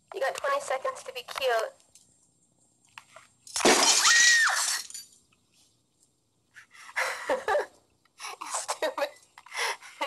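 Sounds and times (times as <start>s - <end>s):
glass marbles clattering: 3.5s - 5.2s.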